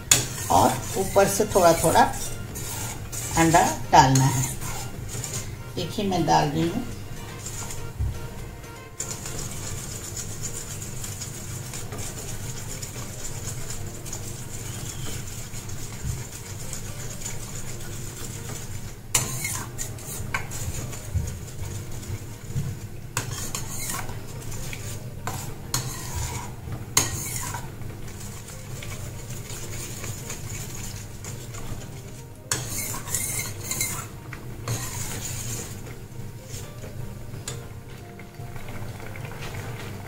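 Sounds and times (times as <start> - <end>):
ladle scraping steel pot: 0.0 - 40.0.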